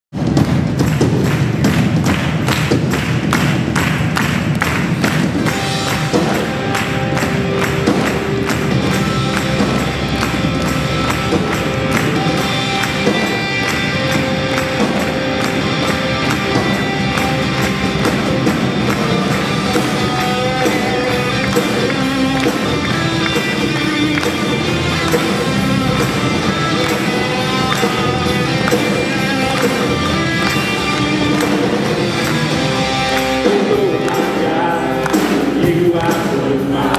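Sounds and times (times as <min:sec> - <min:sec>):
band playing worship song: 0:00.2 - 0:36.9
rhythmic hand claps: 0:00.2 - 0:36.9
acoustic guitar strumming: 0:05.5 - 0:36.6.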